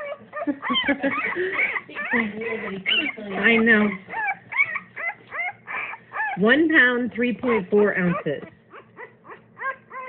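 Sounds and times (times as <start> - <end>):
puppy whimpering: 0.0 - 6.6, 7.4 - 10.0.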